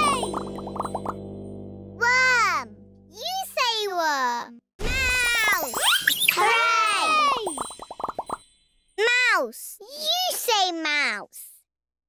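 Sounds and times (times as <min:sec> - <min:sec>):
cartoon plop: 0:00.0 - 0:01.2
background music chord: 0:00.0 - 0:03.2
child saying ooh: 0:04.9 - 0:05.7, 0:06.4 - 0:07.5.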